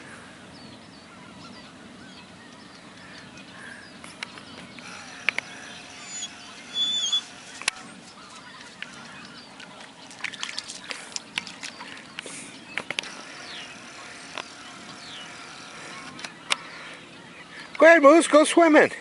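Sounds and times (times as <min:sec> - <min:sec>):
sharp clicks: 0:04.0 - 0:07.8, 0:12.2 - 0:16.6
waterfowl calling: 0:04.8 - 0:17.8.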